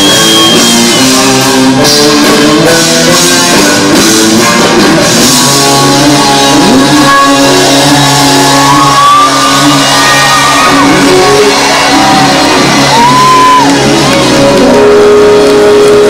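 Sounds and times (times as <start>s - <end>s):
live rock band playing: 0.0s - 16.0s.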